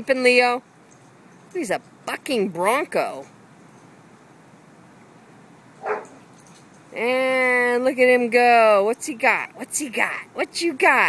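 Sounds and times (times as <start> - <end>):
dog bark: 5.8 - 6.2.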